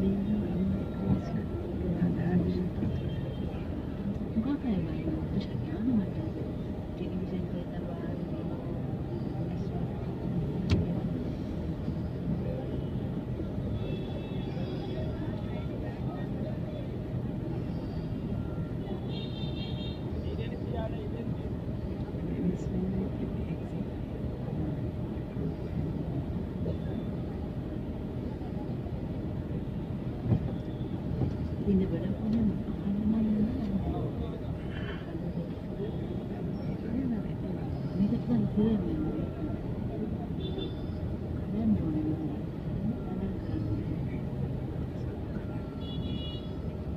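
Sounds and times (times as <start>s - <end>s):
crowd voices: 0.0s - 46.9s
traffic rumble: 0.0s - 46.9s.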